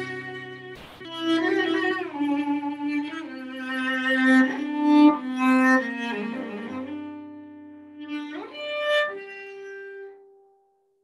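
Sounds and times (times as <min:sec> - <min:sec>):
cello bowed notes: 0:00.0 - 0:10.3.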